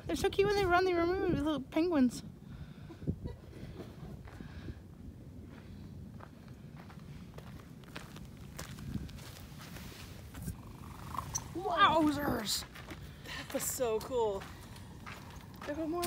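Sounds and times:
footsteps on desert ground: 5.4 - 16.0.

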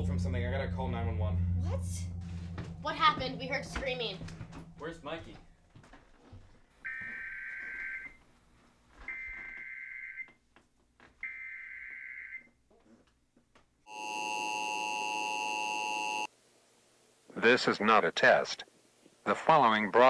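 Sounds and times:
steady attention tone: 0.0 - 5.7, 13.9 - 16.3.

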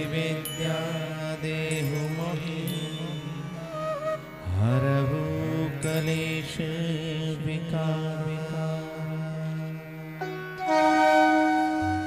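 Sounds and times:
mantra chanting: 0.0 - 9.8.

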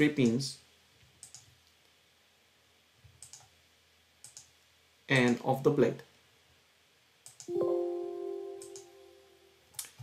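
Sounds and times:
faint computer mouse clicks: 1.1 - 1.9, 3.1 - 3.5, 4.2 - 4.5, 7.2 - 7.5, 8.6 - 8.9.

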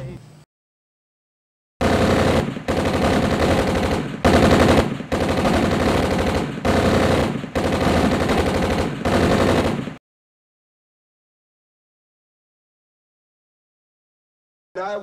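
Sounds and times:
automatic gunfire bursts: 1.8 - 10.0.

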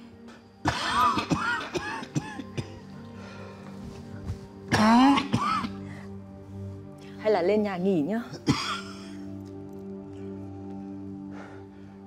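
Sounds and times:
soft background music: 0.0 - 12.0
old man coughing: 0.6 - 2.9, 4.7 - 5.8, 8.3 - 9.2.

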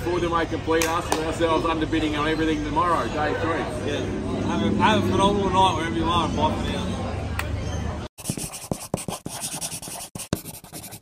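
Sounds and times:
felt-tip marker scratching paper: 8.2 - 11.0.

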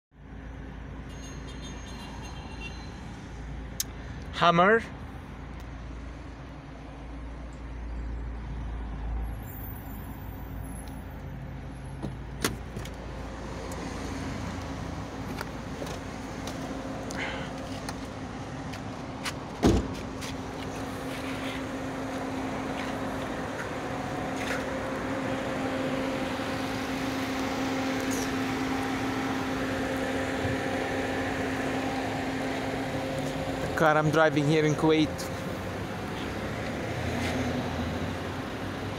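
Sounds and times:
car engine running: 11.9 - 37.0
heavy thud: 19.6 - 20.1.

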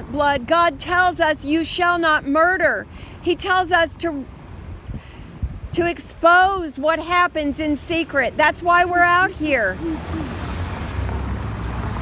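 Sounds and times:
cars driving past: 7.0 - 12.0.

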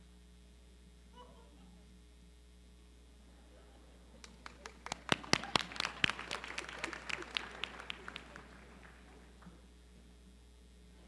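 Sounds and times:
audience clapping: 4.2 - 9.6.

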